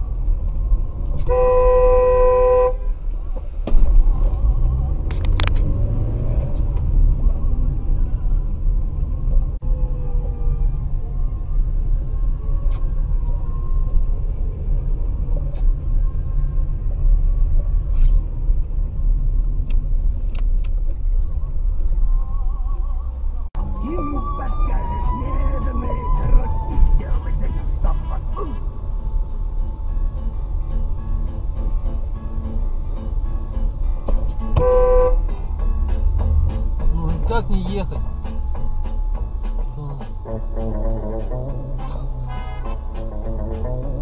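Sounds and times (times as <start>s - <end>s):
engine and road rumble: 0.0s - 44.0s
car horn: 1.2s - 3.0s, 34.2s - 35.6s, 38.0s - 44.0s.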